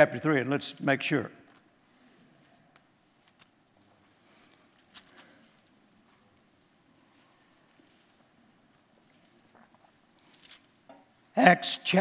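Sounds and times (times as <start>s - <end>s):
pages rustling: 3.1s - 5.8s, 10.2s - 10.8s.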